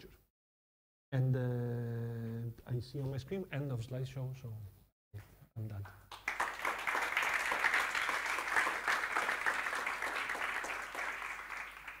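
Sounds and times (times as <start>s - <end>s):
audience applauding: 6.1s - 12.0s.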